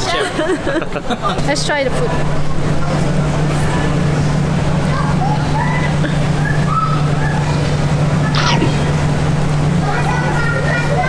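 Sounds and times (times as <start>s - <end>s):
loud low machinery hum: 0.0s - 11.0s
faint distant voices: 4.9s - 11.0s.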